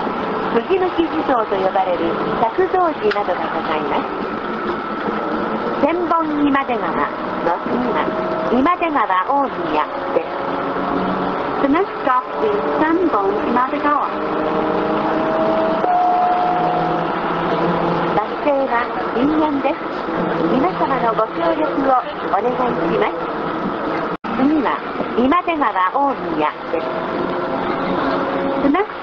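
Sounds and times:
bus cabin running noise: 0:00.0 - 0:29.0
recorded announcement voice: 0:00.5 - 0:04.3, 0:05.8 - 0:10.4, 0:11.6 - 0:14.4, 0:18.0 - 0:23.3, 0:24.3 - 0:27.1, 0:27.9 - 0:29.0
steady whine: 0:15.0 - 0:28.8.

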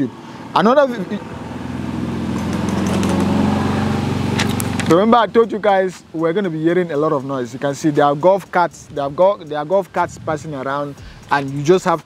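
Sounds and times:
golf cart motor droning: 0:00.0 - 0:05.7.

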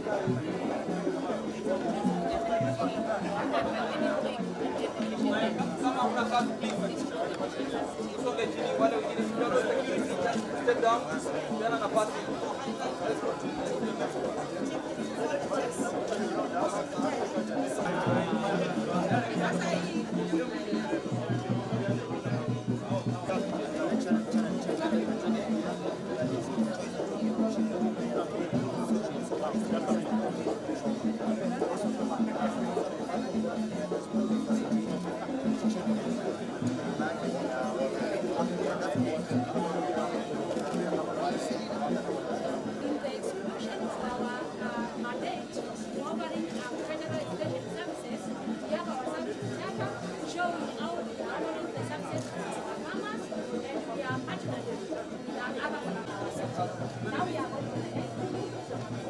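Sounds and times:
people chattering: 0:00.0 - 0:59.0
people talking at once: 0:00.0 - 0:59.0.

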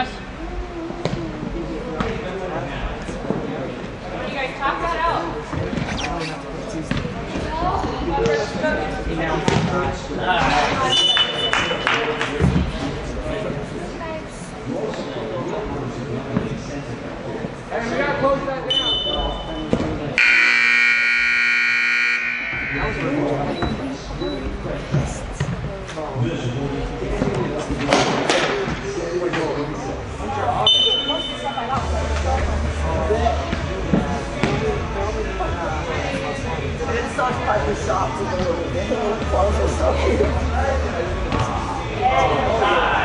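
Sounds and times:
voices: 0:00.0 - 0:43.0
scoreboard buzzer: 0:20.2 - 0:23.1.

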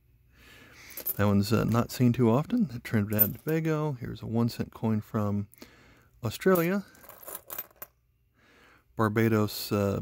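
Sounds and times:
coins clinking: 0:00.8 - 0:01.3, 0:03.1 - 0:03.6, 0:06.5 - 0:07.9.

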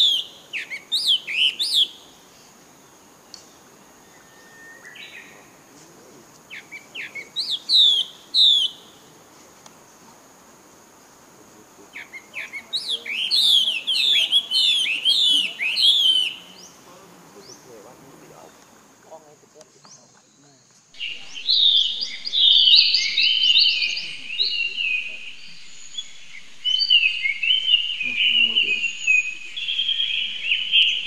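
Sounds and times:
songbird whistling: 0:00.0 - 0:02.0, 0:03.4 - 0:05.4, 0:06.5 - 0:09.0, 0:12.0 - 0:16.8, 0:21.0 - 0:31.0.

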